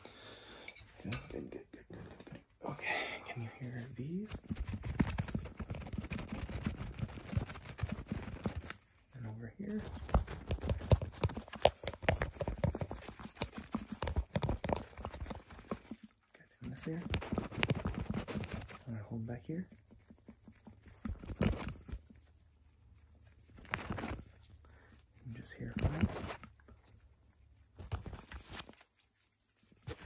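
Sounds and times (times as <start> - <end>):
plastic tubes tapping and crackling: 9.7 - 22.4.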